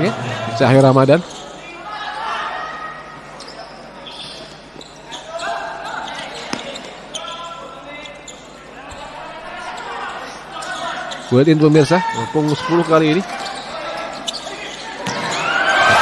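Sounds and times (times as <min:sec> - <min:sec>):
crowd voices echoing: 0:00.0 - 0:16.0
players shouting: 0:11.8 - 0:16.0.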